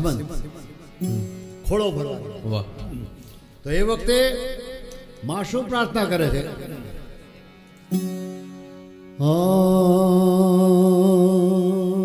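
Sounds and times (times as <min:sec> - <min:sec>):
man singing with vibrato: 0:09.2 - 0:12.0.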